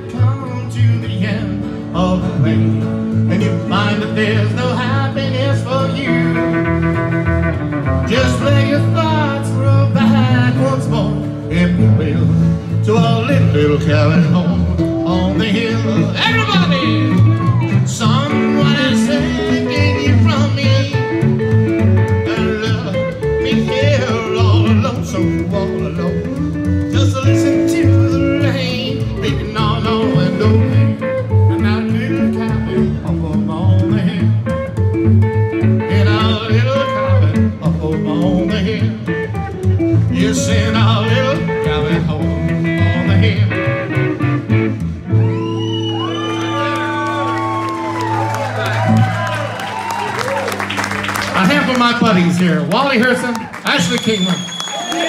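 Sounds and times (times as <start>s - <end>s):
man singing: 0.0s - 7.3s, 7.9s - 34.8s, 35.6s - 44.5s
acoustic and electric guitars: 0.0s - 55.0s
upright bass: 0.0s - 55.0s.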